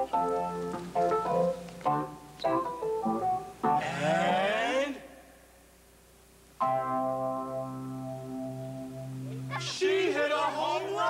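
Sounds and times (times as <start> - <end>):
voices giving wavering cry: 9.2 - 11.0.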